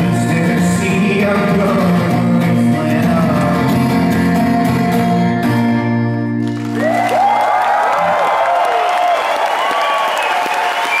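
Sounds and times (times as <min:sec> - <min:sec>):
audience applause: 0:06.4 - 0:11.0
cheers and whistles: 0:06.7 - 0:11.0.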